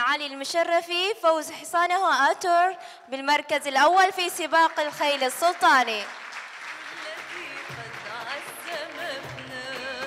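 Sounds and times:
audience applauding: 0:04.7 - 0:10.0
background music: 0:06.7 - 0:10.0.

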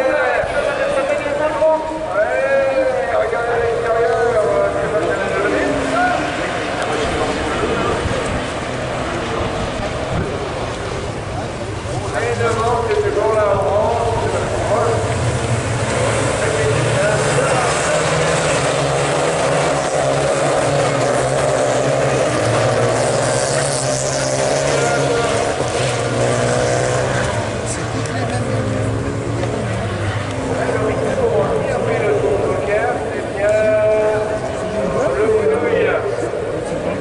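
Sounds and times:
racing car engines: 0:00.0 - 0:37.0.

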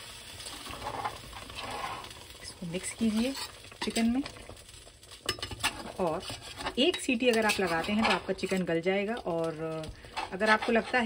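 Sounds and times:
faint sizzle: 0:00.0 - 0:11.0
spatula scraping through curry: 0:00.6 - 0:02.1, 0:05.4 - 0:08.6, 0:10.1 - 0:11.0.

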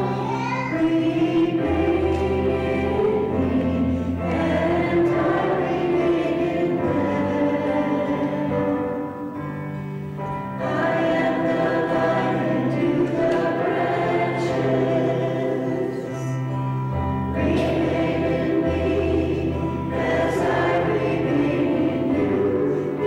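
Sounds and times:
voices singing a hymn: 0:00.0 - 0:23.0.

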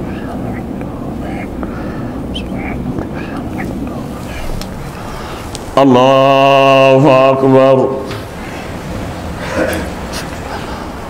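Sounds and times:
congregation murmuring prayers: 0:00.0 - 0:11.0
steady low hum: 0:00.0 - 0:11.0.

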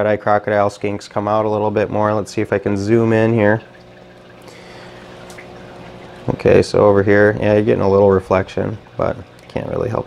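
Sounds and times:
running water trickling: 0:00.0 - 0:10.0
faint even hum: 0:00.4 - 0:10.0.

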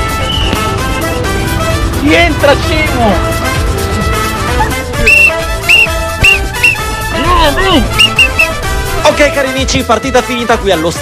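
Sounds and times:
background music: 0:00.0 - 0:11.0
referee's whistle blasts: 0:05.0 - 0:06.8, 0:07.9 - 0:08.5.

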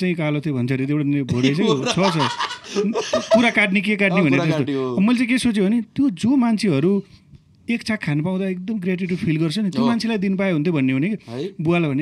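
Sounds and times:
men talking: 0:01.2 - 0:12.0
men laughing: 0:01.4 - 0:04.7.

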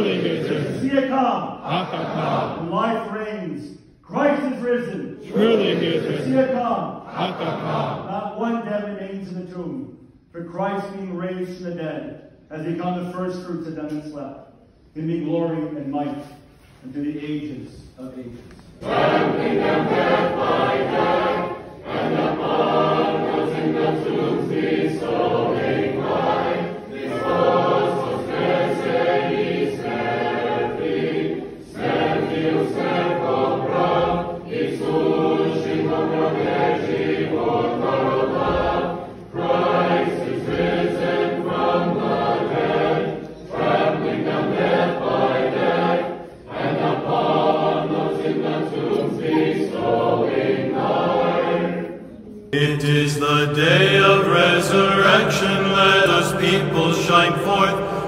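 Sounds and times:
choir chanting unaccompanied: 0:00.0 - 0:02.8, 0:05.2 - 0:08.1, 0:18.8 - 0:58.0.

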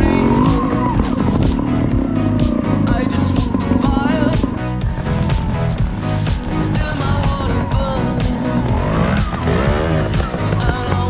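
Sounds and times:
motorcycle engine revving: 0:00.0 - 0:11.0
rock music with steady beat: 0:00.0 - 0:11.0.

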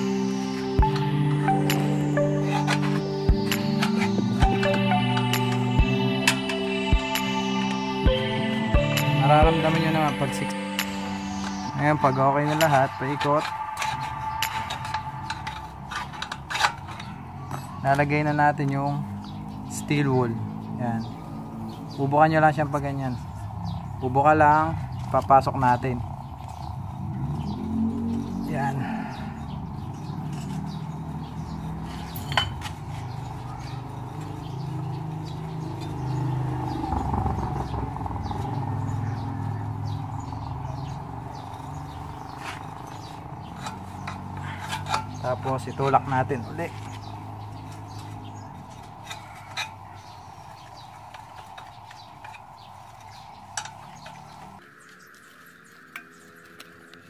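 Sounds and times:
metal rod scraping inside muffler: 0:41.8 - 0:46.8.

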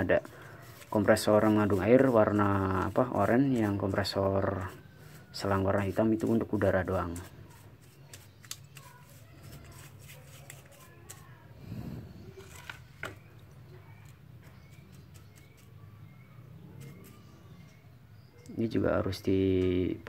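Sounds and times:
paintbrush scrubbing metal: 0:00.0 - 0:11.5, 0:14.1 - 0:17.8.

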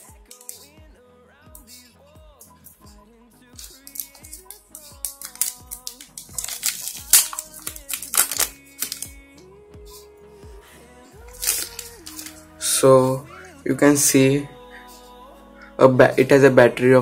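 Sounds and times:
background music: 0:00.0 - 0:17.0
plastic bag crinkling: 0:03.6 - 0:09.2, 0:11.4 - 0:12.4.

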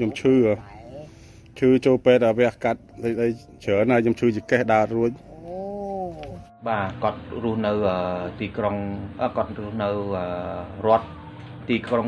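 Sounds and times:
elderly woman talking: 0:00.0 - 0:01.2, 0:05.2 - 0:06.4
woman speaking: 0:00.0 - 0:01.2, 0:05.3 - 0:06.5
elderly woman wavering cry: 0:05.2 - 0:06.4.

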